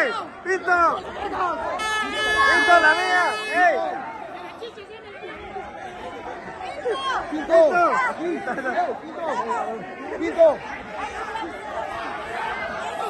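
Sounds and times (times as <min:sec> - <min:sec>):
crowd talking and calling out: 0:00.0 - 0:13.0
loud shouts: 0:00.0 - 0:13.0.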